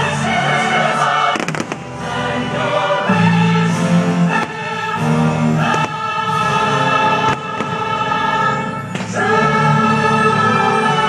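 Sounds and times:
choir singing long notes: 0.0s - 11.0s
fireworks bursting: 1.2s - 1.9s, 5.6s - 6.3s, 7.2s - 8.2s.

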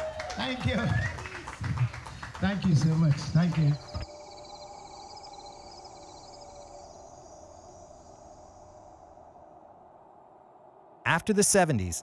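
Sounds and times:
night insects trilling: 2.0s - 11.0s.

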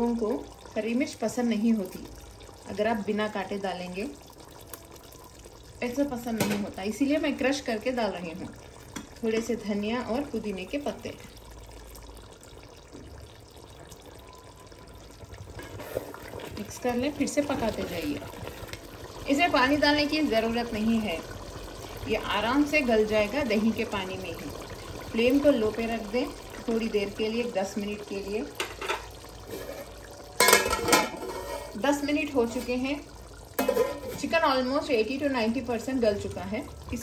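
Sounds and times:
gravy simmering in a pot: 0.0s - 37.0s
metal lid clattering on pot: 28.6s - 31.8s, 33.6s - 34.3s.

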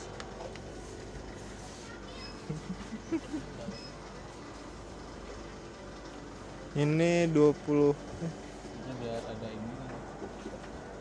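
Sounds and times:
shop background hum: 0.0s - 11.0s
loud laugh: 2.5s - 3.8s.

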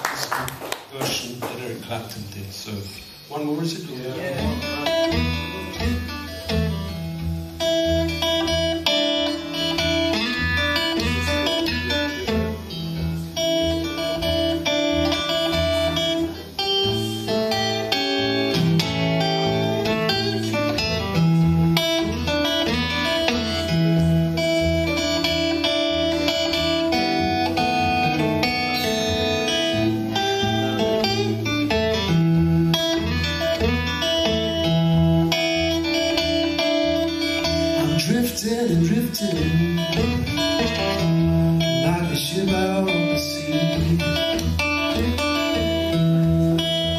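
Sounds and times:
acoustic blues guitar: 3.0s - 46.9s.

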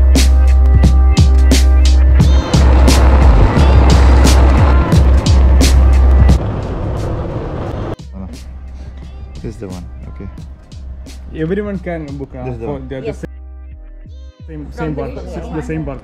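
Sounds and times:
music with heavy bass and drums: 0.0s - 14.6s.

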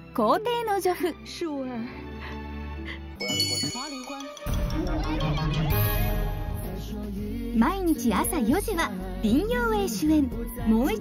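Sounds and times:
person speaking: 3.2s - 4.5s
ringing chime effect: 3.2s - 6.5s.

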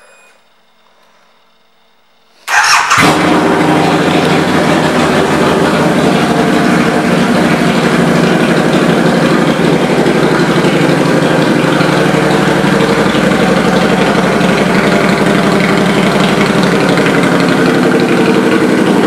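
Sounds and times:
motorcycle engine idling: 2.4s - 19.0s.

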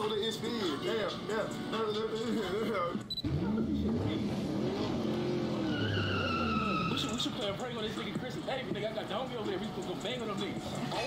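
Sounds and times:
car engine revving: 3.2s - 7.8s
tyre screech: 4.9s - 7.6s.

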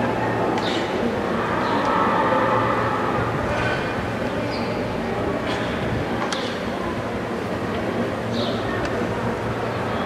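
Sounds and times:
stadium background rumble: 0.0s - 10.0s.

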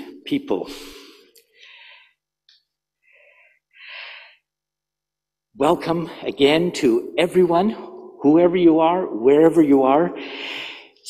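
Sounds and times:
man breathing: 0.6s - 2.3s, 3.0s - 4.6s, 10.2s - 11.0s.

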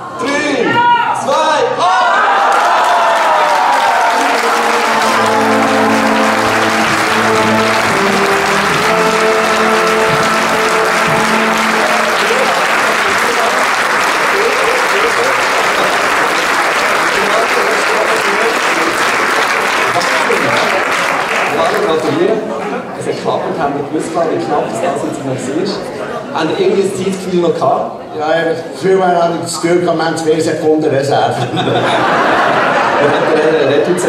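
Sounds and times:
crowd applauding and cheering: 2.1s - 22.4s
melody of held notes: 4.0s - 13.8s.

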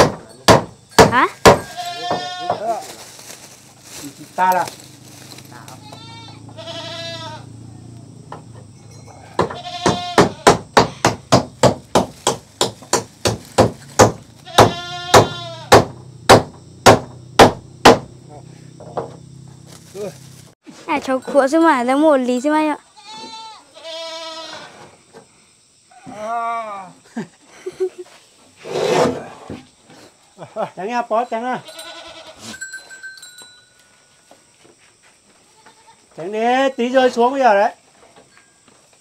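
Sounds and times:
hammer striking nails: 0.0s - 1.7s, 9.4s - 18.1s.

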